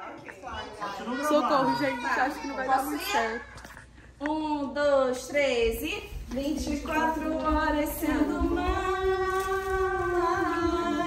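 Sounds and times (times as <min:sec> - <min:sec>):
women singing a cappella: 0:06.3 - 0:11.0.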